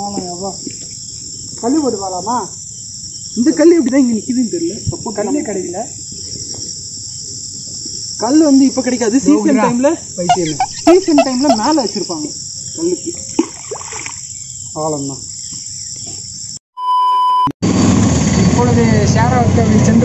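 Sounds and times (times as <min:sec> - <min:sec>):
crickets chirping: 0:00.0 - 0:16.6
men talking: 0:03.4 - 0:06.0, 0:08.2 - 0:13.3.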